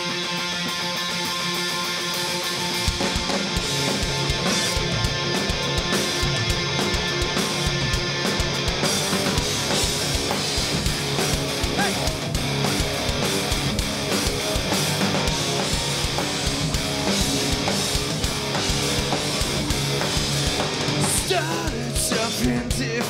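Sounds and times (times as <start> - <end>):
bass guitar: 0.0 - 23.0
distorted electric guitars: 0.0 - 23.0
drum kit driving beat: 0.0 - 23.0.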